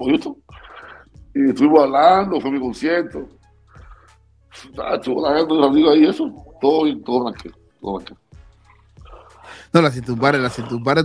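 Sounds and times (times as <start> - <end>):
man's voice: 9.6 - 11.0.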